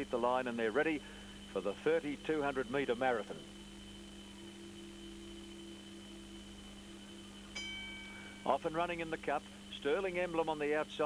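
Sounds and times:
steady low hum: 0:00.0 - 0:11.0
starting bell ringing: 0:07.6 - 0:08.6.

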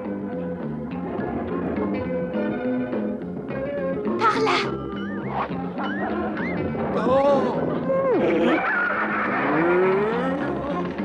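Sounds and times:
cartoon theme music: 0:04.0 - 0:11.0.

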